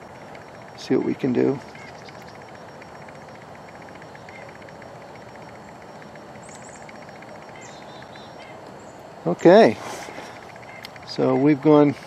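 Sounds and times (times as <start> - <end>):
faint high chirps: 0.0 - 9.0.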